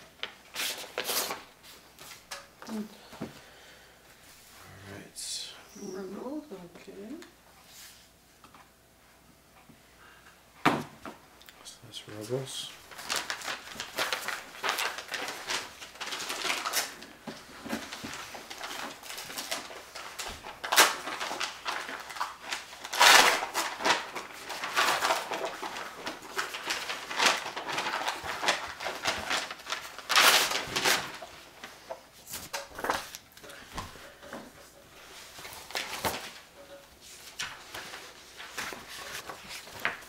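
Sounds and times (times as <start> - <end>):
paper rustling: 0.1 - 2.3, 12.7 - 40.0
envelopes tearing open: 12.9 - 17.2, 17.8 - 31.3.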